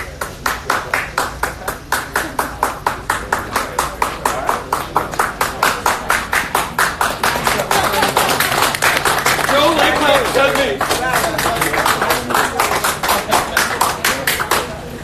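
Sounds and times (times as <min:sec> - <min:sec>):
crowd clapping in unison: 0:00.0 - 0:15.0
crowd voices: 0:00.0 - 0:15.0.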